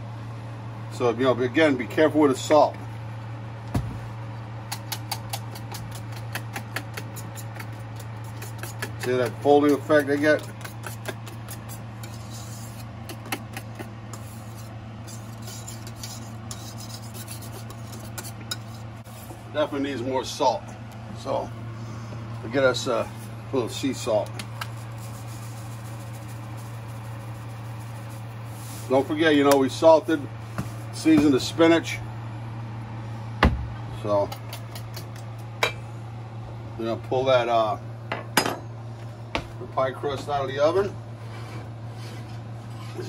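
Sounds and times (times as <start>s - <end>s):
steady low hum: 0.0s - 43.0s
whisk beating in metal bowl: 4.7s - 18.9s.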